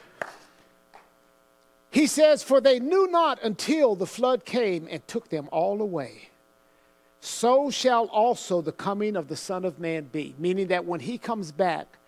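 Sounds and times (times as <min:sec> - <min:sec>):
faint electrical buzz: 0:00.0 - 0:12.0
man speaking: 0:01.9 - 0:06.4, 0:07.2 - 0:12.0.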